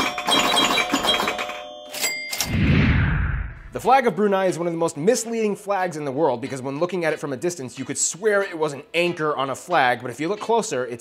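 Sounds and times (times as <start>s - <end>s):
deep whoosh: 2.5s - 3.8s.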